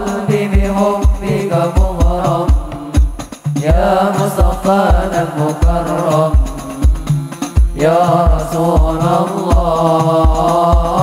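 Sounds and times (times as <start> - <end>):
deep drum strokes: 0.0 - 11.0
frame drums: 0.0 - 11.0
men singing together: 0.0 - 11.0.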